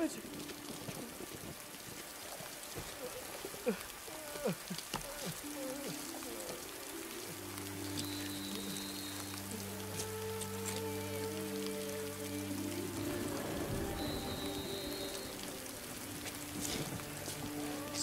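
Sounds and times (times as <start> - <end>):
steady rain falling: 0.0 - 18.0.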